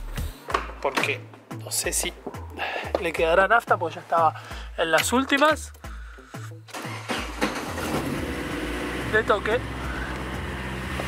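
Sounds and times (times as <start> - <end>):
background music with bass notes: 0.0 - 11.0
car engine starting and running: 6.7 - 11.0.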